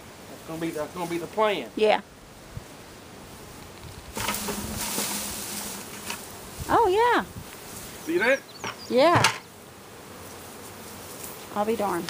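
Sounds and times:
rustle of leaves: 0.0 - 9.1, 10.2 - 12.0
bees buzzing: 0.0 - 12.0.

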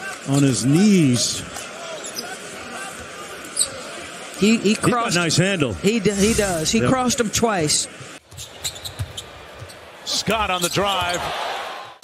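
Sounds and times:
sneaker squeaks on hardwood court: 8.3 - 9.8.

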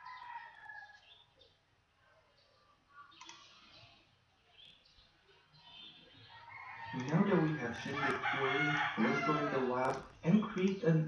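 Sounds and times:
soft clicks: 3.1 - 3.9, 7.0 - 7.2, 9.8 - 10.8.

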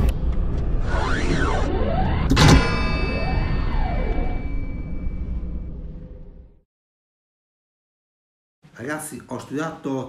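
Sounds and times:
low rumble: 0.0 - 6.6
sudden hit: 1.1 - 6.4
ringing tone: 1.4 - 6.2.

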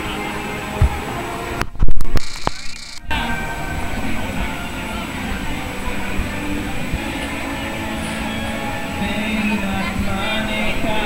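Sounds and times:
faint amplified music: 0.0 - 11.0
noisy outdoor din: 0.0 - 11.0.

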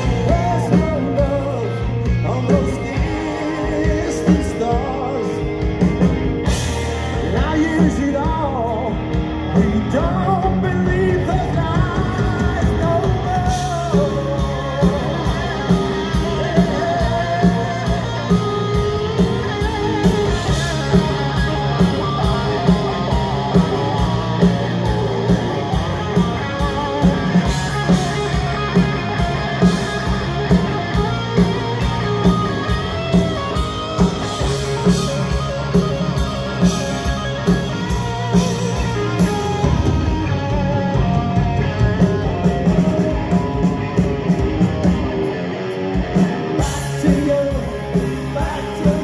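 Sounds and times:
bass guitar: 0.0 - 49.0
electric guitars: 0.0 - 49.0
steady drumbeat: 0.0 - 49.0.

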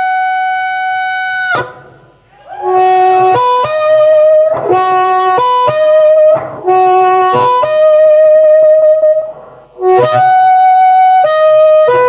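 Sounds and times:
harmonica holding high note: 0.0 - 12.0.

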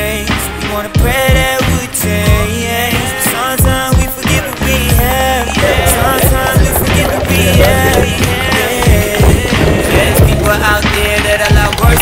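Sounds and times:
hip hop beat with bass: 0.0 - 12.0.

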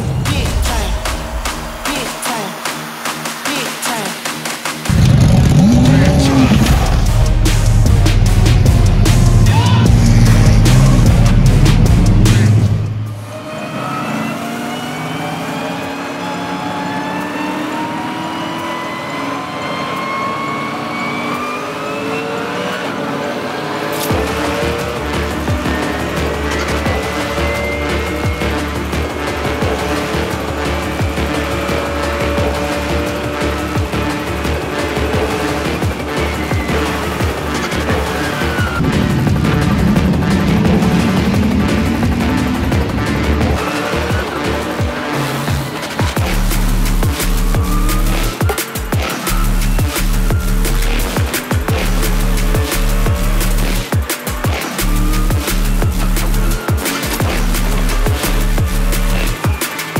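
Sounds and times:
race car engines running: 0.0 - 59.9
soundtrack music rising in pitch: 0.0 - 59.9
deep bass: 4.9 - 13.1, 24.1 - 44.8, 46.2 - 48.4, 49.2 - 53.9, 54.7 - 56.6, 57.2 - 59.4.

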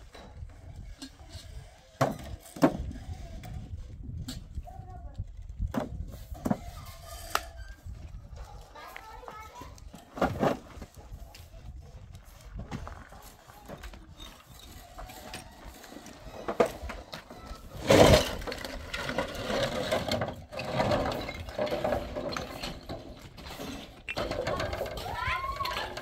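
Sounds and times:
wheelbarrow rattling: 0.0 - 11.6, 12.3 - 26.0.

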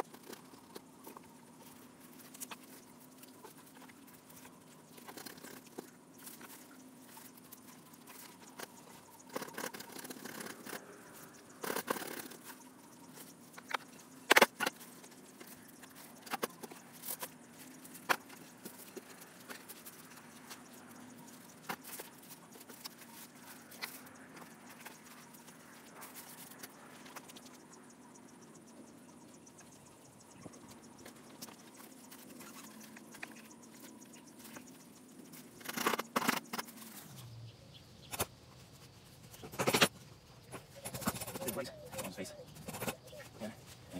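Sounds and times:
handling noises: 0.0 - 27.7.

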